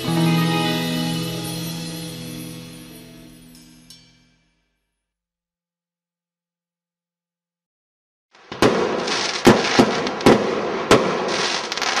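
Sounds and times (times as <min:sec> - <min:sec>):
fireworks bangs: 0:08.4 - 0:12.0
fireworks crackling: 0:08.4 - 0:12.0.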